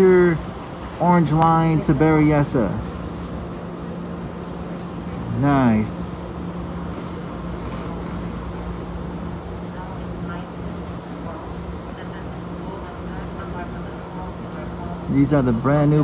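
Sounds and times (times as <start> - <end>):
faint voices: 0.0 - 16.0
stopped train humming: 0.0 - 16.0.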